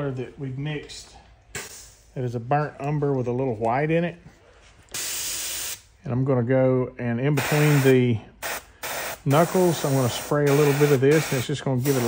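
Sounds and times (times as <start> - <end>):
airbrush spraying hiss: 7.4 - 12.0.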